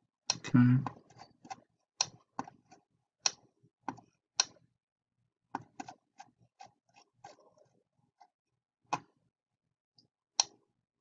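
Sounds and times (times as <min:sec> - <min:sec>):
computer mouse buttons clicking: 0:00.3 - 0:04.6, 0:05.6 - 0:07.4, 0:10.4 - 0:10.6.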